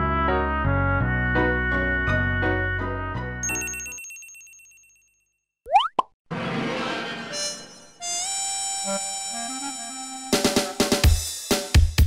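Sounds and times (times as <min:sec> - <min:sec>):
cartoon bloop sound effect: 0:05.7 - 0:06.1.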